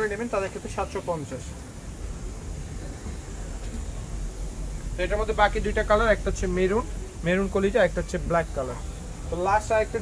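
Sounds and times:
low background noise: 0.0 - 10.0
man speaking: 5.0 - 10.0.

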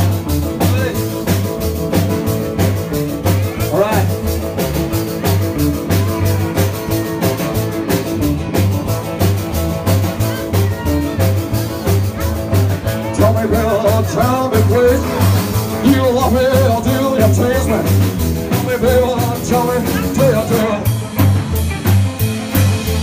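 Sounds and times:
drums: 0.0 - 23.0
guitars: 0.0 - 23.0
upright bass pulsing: 0.0 - 23.0.

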